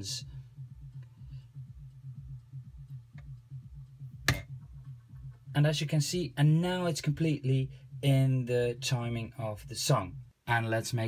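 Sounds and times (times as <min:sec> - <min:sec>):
faint dance music bass and kick: 0:00.0 - 0:11.0.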